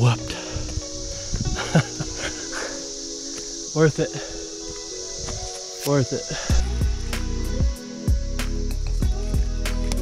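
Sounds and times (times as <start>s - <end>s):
background music with sustained notes: 0.0s - 10.0s
insects buzzing: 0.0s - 10.0s.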